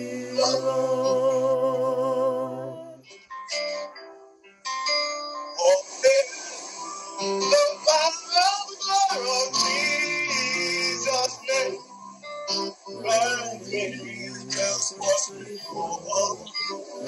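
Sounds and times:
worship singing: 0:00.0 - 0:03.1, 0:05.6 - 0:17.0
keyboard accompaniment: 0:00.0 - 0:17.0.

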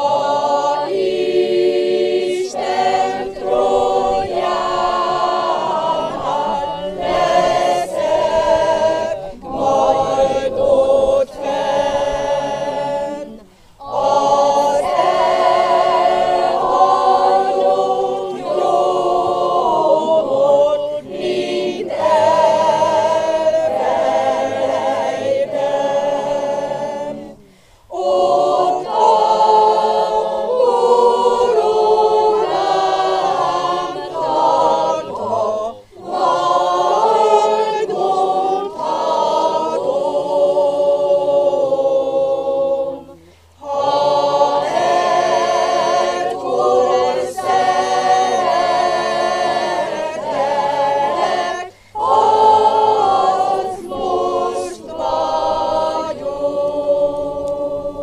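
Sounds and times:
choir singing a hymn: 0:00.0 - 0:58.0.

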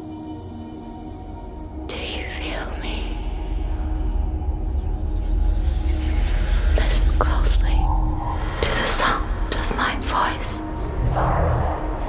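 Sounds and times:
deep low drone: 0:00.0 - 0:12.0
breathy whispered voices: 0:01.9 - 0:03.8, 0:06.7 - 0:11.0.

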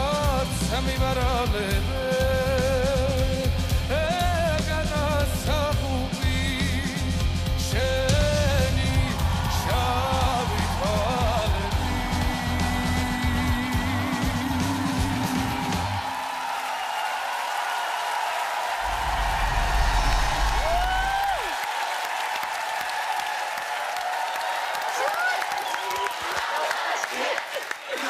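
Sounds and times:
man singing: 0:00.0 - 0:15.7
band accompaniment: 0:00.0 - 0:16.2
audience applause: 0:08.1 - 0:28.0.

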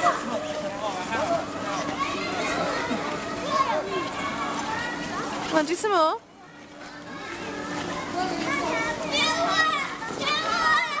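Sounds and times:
children shouting: 0:00.0 - 0:05.5, 0:06.4 - 0:11.0.

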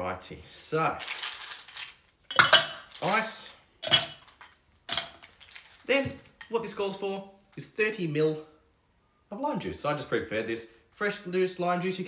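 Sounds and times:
ice cubes clattering in a bowl: 0:01.0 - 0:06.1.

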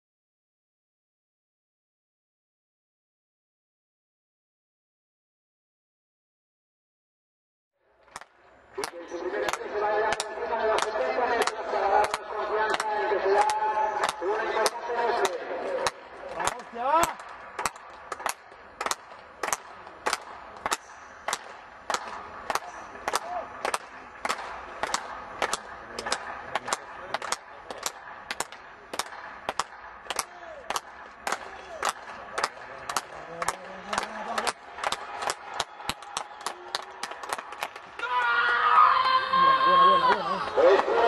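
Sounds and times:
rhythmic handclapping: 0:08.0 - 0:38.0.

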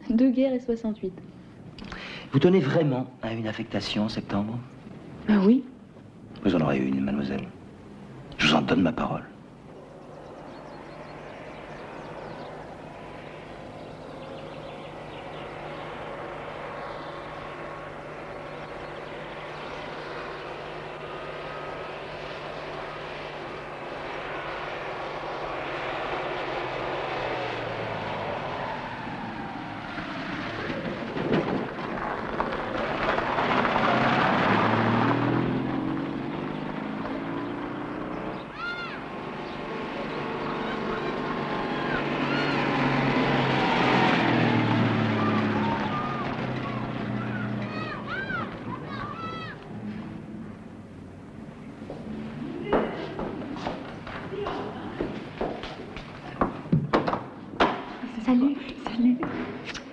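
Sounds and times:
car engine driving past: 0:06.4 - 0:59.9.

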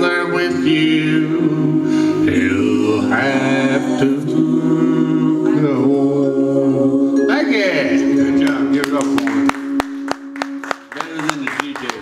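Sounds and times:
backing music: 0:00.0 - 0:12.0
audience clapping: 0:08.4 - 0:12.0.

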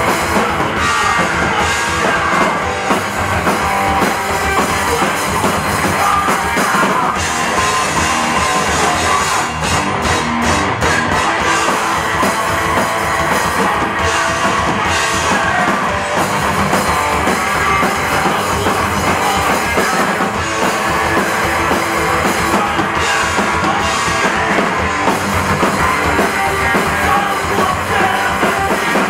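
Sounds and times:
distorted bass guitar: 0:00.0 - 0:29.0
drum kit: 0:00.0 - 0:29.0.

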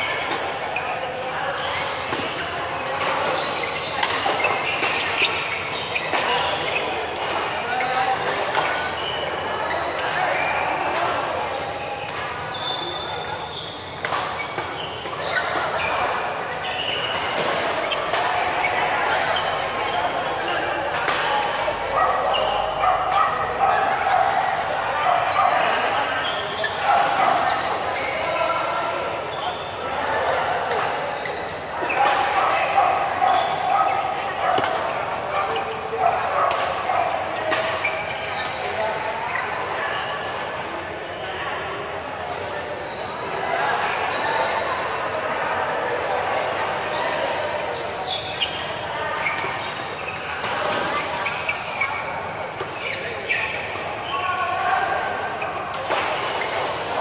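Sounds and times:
shoes squeaking on floor: 0:00.0 - 0:02.0, 0:02.8 - 0:07.0, 0:11.7 - 0:20.8, 0:25.2 - 0:29.8, 0:34.8 - 0:35.9, 0:36.9 - 0:40.2, 0:42.6 - 0:43.4, 0:46.8 - 0:54.6
chatter of voices: 0:00.0 - 0:57.0.

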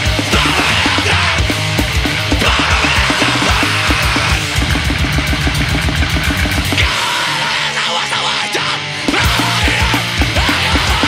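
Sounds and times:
rapid drumming: 0:00.0 - 0:07.8, 0:09.0 - 0:11.0
distorted guitars: 0:00.0 - 0:11.0.

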